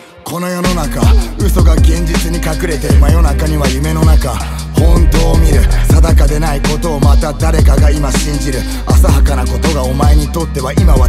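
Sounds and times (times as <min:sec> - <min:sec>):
person rapping: 0:00.0 - 0:11.0
deep sliding bass: 0:00.7 - 0:11.0.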